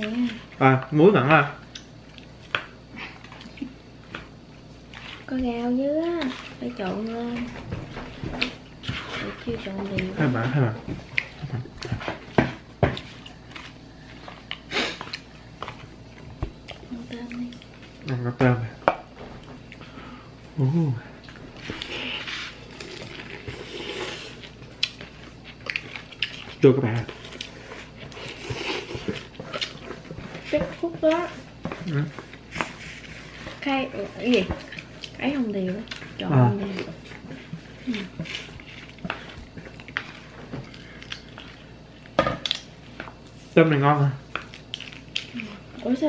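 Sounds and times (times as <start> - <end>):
slurping noodles: 21.8 - 24.4
chewing smacks: 24.4 - 30.5, 36.8 - 43.4, 44.3 - 45.7.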